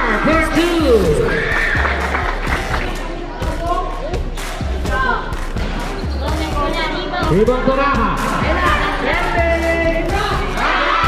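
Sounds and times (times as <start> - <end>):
voices and shouts: 6.1 - 11.0.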